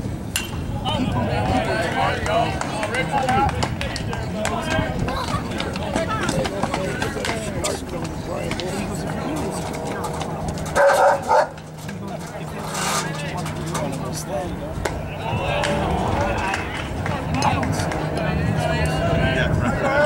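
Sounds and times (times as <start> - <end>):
spectators chattering: 0.0 - 20.0.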